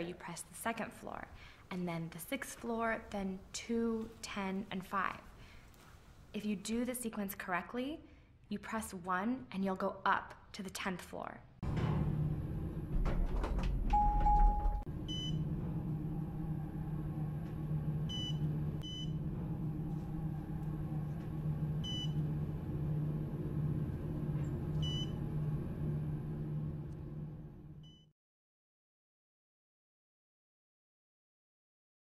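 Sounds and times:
steady low hum: 11.6s - 28.0s
long low beep: 13.9s - 15.5s, 18.1s - 19.2s, 21.8s - 22.3s, 24.8s - 25.2s.

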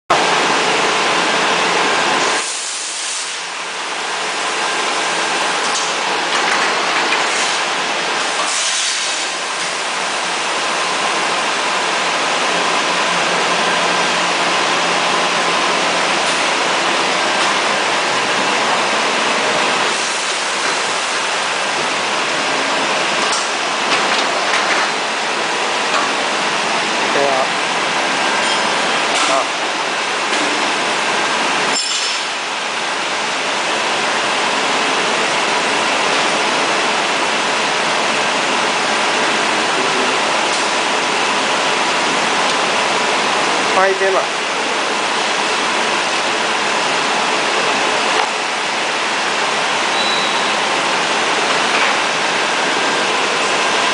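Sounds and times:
factory machinery rushing noise: 0.1s - 53.9s.

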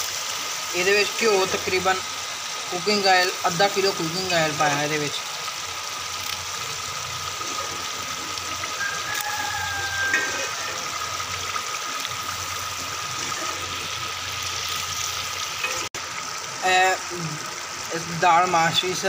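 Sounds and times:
pot boiling with bubbling hiss: 0.0s - 19.0s.

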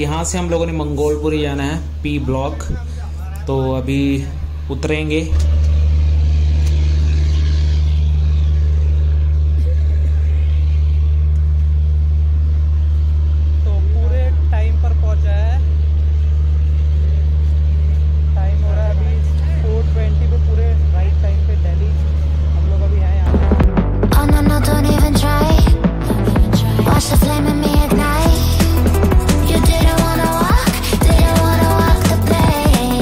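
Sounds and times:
loud steady low hum: 0.0s - 33.0s.

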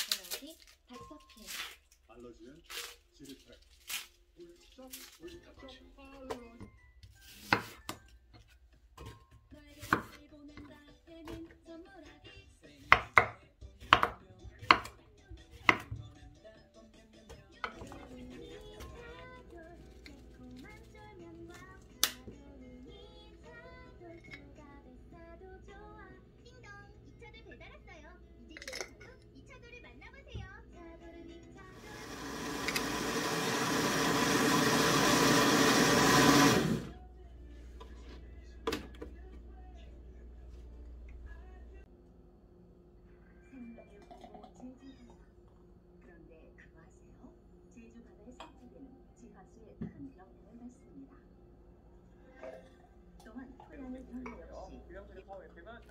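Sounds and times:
blender running: 31.7s - 37.0s.

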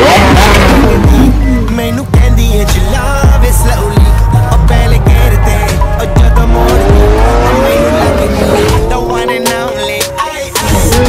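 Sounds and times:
high car note climbing: 0.0s - 11.0s
music with heavy bass beat: 0.0s - 11.0s.

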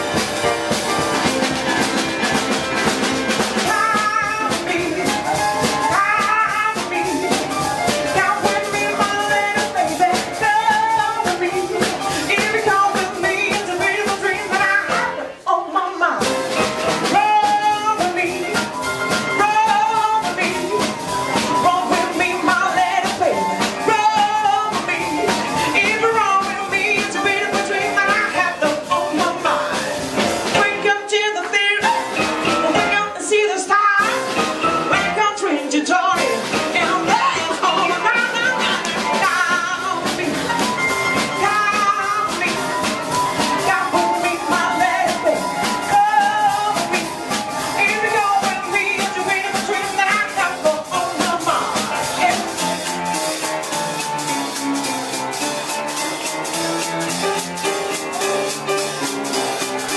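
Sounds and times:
drums: 0.0s - 59.9s
live rock and roll band: 0.0s - 59.9s
upright piano: 0.0s - 59.9s.

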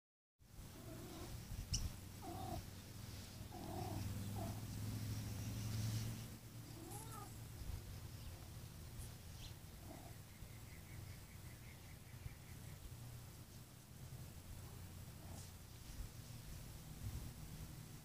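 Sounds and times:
cats meowing: 2.2s - 2.6s, 6.6s - 7.4s.

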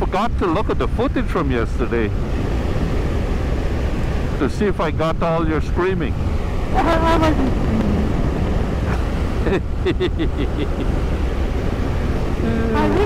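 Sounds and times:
wind rush: 0.0s - 13.0s
road noise on coarse surface: 0.8s - 13.0s
people laughing: 8.9s - 11.0s, 12.4s - 13.0s.

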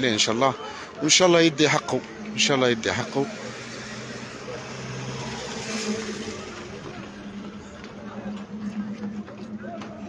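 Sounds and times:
steady outdoor noise: 0.0s - 10.0s
vehicle engine running: 1.8s - 10.0s.

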